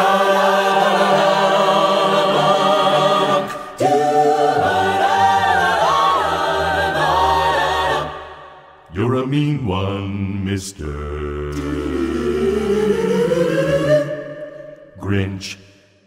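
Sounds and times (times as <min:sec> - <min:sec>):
a cappella choir singing: 0:00.0 - 0:15.6.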